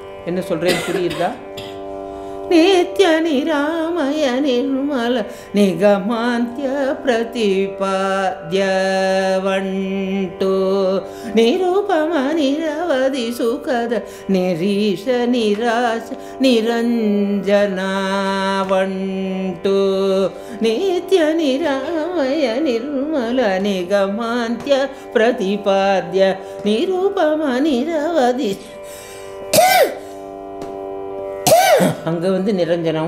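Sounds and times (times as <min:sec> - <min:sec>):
woman singing: 0:02.5 - 0:28.8, 0:31.8 - 0:33.0.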